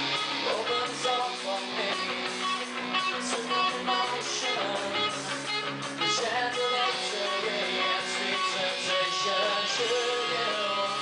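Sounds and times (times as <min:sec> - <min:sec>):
live band with electric guitars: 0:00.0 - 0:11.0.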